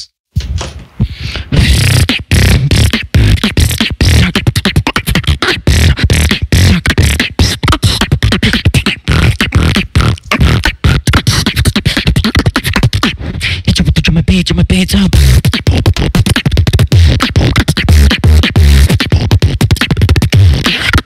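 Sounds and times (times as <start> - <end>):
person beatboxing: 1.0 - 21.0.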